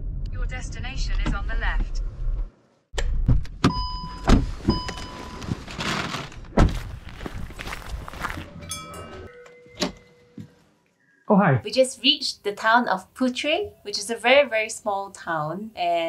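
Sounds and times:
brief tone: 3.7 - 5.6, 8.6 - 10.4.

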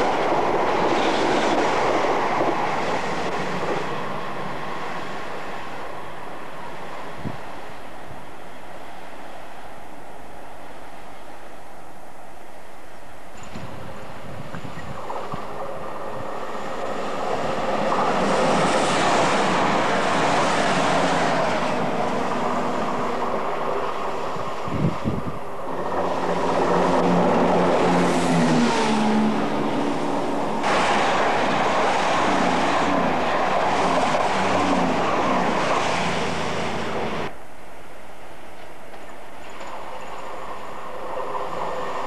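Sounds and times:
high-speed trains passing: 0.0 - 42.0
low train engine hum: 0.0 - 42.0.

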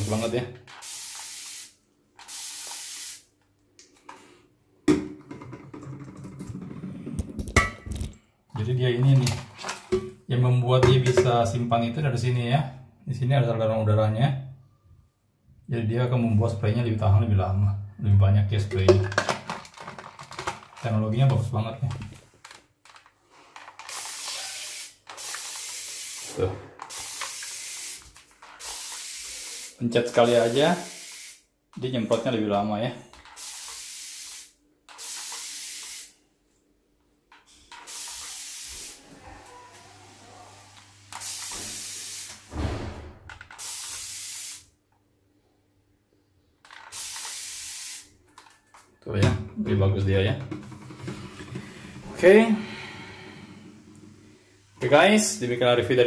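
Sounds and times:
spray bottle misting: 0.0 - 3.3, 23.8 - 31.4, 33.4 - 36.2, 37.8 - 39.0, 41.1 - 42.5, 43.5 - 44.7, 46.9 - 48.1.

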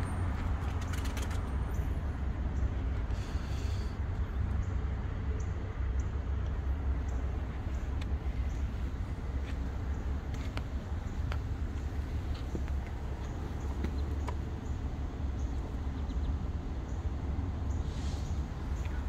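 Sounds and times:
low street rumble: 0.0 - 19.0.

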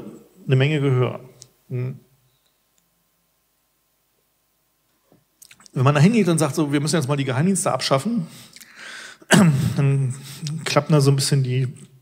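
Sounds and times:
man speaking into microphone: 0.0 - 2.0, 5.6 - 8.4, 9.3 - 12.0.

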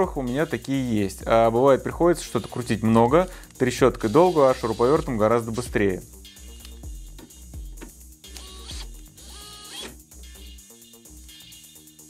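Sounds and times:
background music with bass line: 0.0 - 12.0
cordless drill whining: 8.2 - 10.6.

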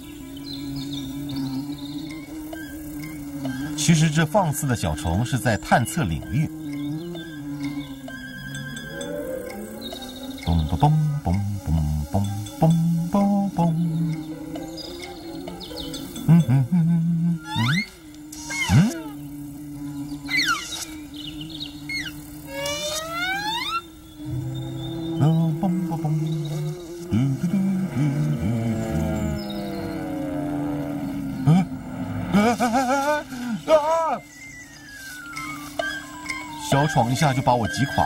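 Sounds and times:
low drone: 0.0 - 38.0
comic film score music: 3.3 - 19.2
sliding whistle-like tones: 17.4 - 19.0, 33.9 - 38.0.

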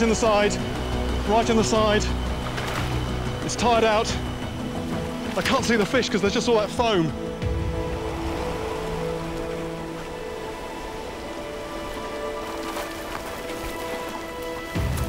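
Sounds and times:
white water rushing: 0.0 - 15.0.

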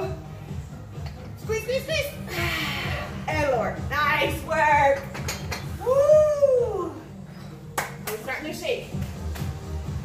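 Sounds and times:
hand clap: 7.7 - 8.3, 9.2 - 9.6.

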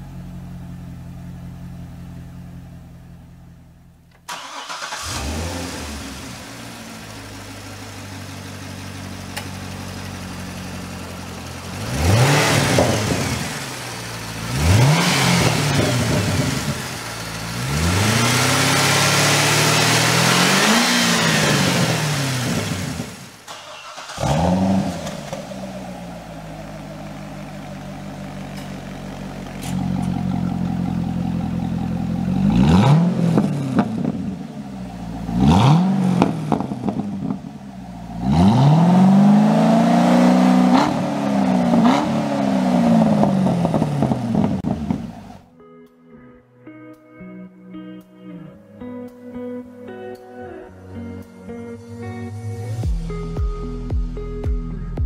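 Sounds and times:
car engine idling and revving: 0.0 - 45.5
exhaust crackles: 0.0 - 45.5.

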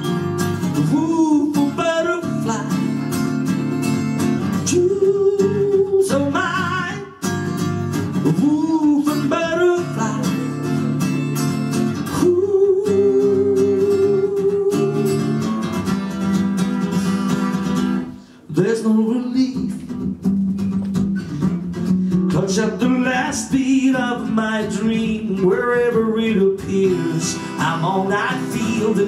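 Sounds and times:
man singing: 0.0 - 15.6, 18.4 - 20.2, 22.1 - 29.0
strummed acoustic guitar: 0.0 - 29.0.

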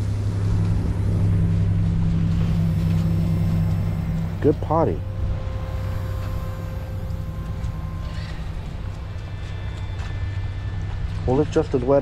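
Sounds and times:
faint high thin whine: 0.0 - 12.0
steady low hum: 0.0 - 12.0.

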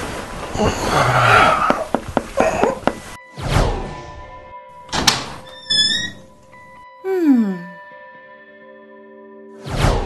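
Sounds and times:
background music: 2.4 - 10.0
wooden door shutting: 4.9 - 6.2.

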